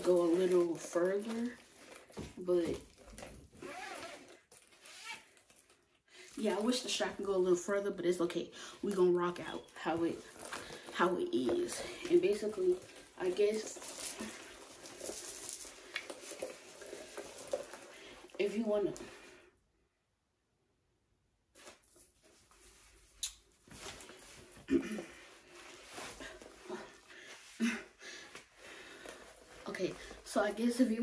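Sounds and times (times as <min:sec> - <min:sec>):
fabric strap rustling: 0:00.0 - 0:07.8, 0:08.7 - 0:19.4, 0:21.6 - 0:31.0.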